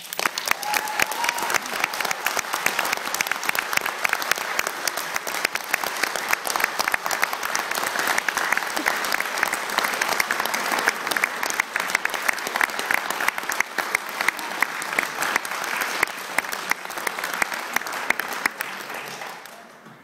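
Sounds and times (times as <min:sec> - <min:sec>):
audience clapping: 0:00.0 - 0:20.0.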